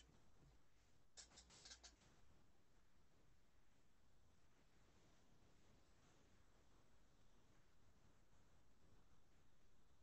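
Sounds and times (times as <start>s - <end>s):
faint microphone hiss: 0.0s - 10.0s
soft clicks or scratches: 1.1s - 2.2s.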